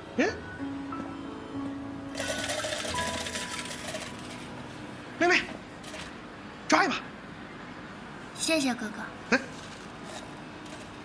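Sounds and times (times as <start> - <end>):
soft background music: 0.0 - 6.6
metallic clatter of tokens pouring: 2.2 - 4.4.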